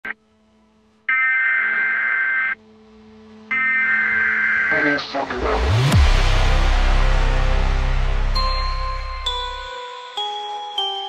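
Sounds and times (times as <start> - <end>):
low steady drone: 2.6 - 9.7.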